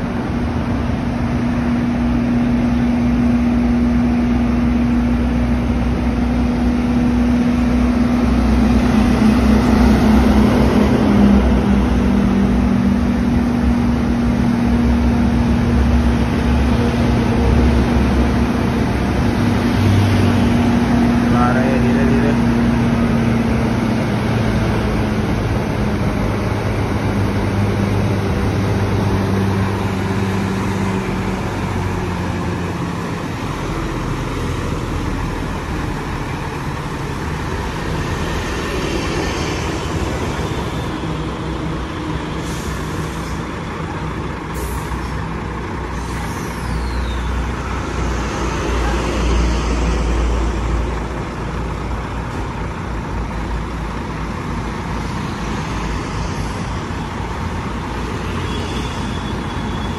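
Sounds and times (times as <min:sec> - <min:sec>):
diesel truck engine running: 0:00.0 - 0:58.5
air brakes hissing: 0:42.4 - 0:43.6, 0:44.5 - 0:45.2, 0:45.9 - 0:47.4.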